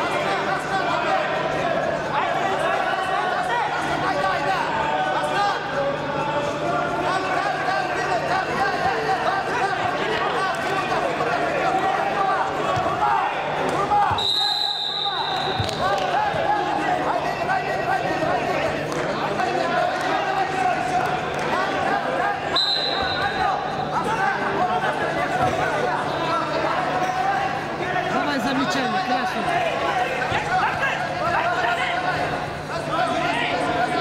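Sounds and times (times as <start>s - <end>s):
background voices in a hall: 0.0s - 34.0s.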